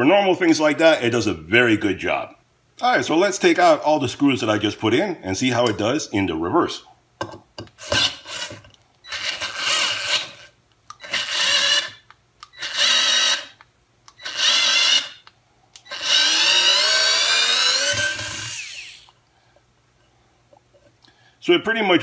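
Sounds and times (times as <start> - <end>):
cordless screwdriver motor whine: 7.9 - 19.2.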